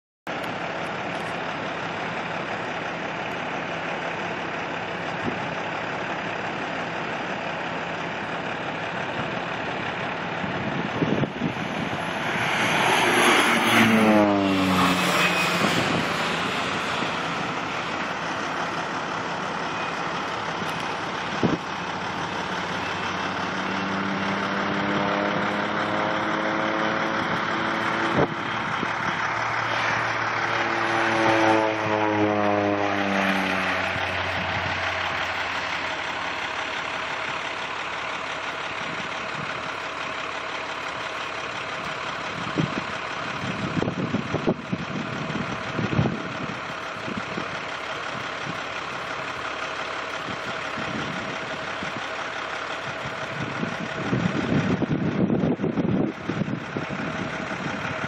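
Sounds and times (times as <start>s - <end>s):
steady low rumble: 0.3s - 25.1s, 32.8s - 40.1s
propeller plane flying past: 5.9s - 37.3s.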